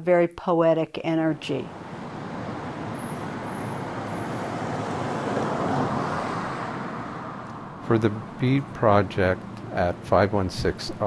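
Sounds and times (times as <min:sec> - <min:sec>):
passing cars rushing: 0:01.4 - 0:11.0.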